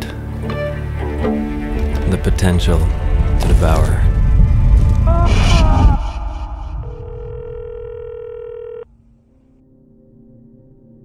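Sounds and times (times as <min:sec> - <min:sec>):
telephone ringback beep: 0:07.1 - 0:08.8.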